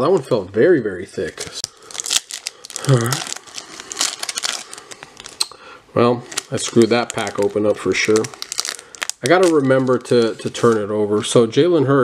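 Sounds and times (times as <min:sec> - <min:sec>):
foil wrapper crinkling torn open: 0:01.4 - 0:05.5, 0:06.2 - 0:10.9.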